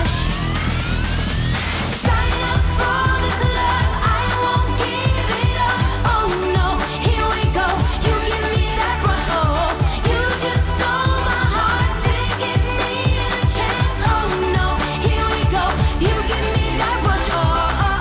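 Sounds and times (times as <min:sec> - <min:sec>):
dance-pop backing track: 0:00.0 - 0:18.0
woman singing pop: 0:02.0 - 0:18.0.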